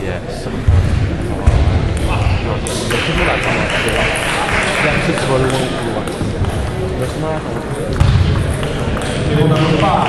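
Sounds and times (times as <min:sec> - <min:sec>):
babble of voices in hall: 0:00.0 - 0:10.0
table tennis ball bounces: 0:01.4 - 0:10.0.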